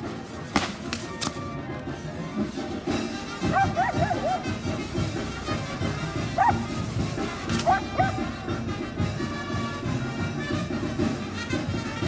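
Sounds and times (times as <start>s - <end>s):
band music: 0.0s - 12.0s
dog barking: 3.5s - 4.5s, 6.4s - 6.6s, 7.6s - 8.2s.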